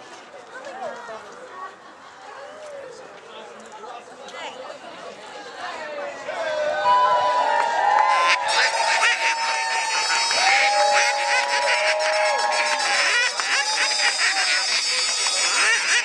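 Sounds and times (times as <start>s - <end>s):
crowd chatter: 0.0s - 16.0s
crowd cheering: 5.9s - 16.0s
duck calls blown: 8.0s - 16.0s.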